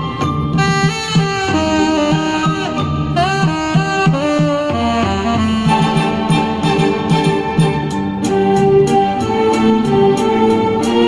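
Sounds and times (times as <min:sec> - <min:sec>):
backing music with low pulsing beat: 0:00.0 - 0:11.0
tenor saxophone melody: 0:00.5 - 0:07.9.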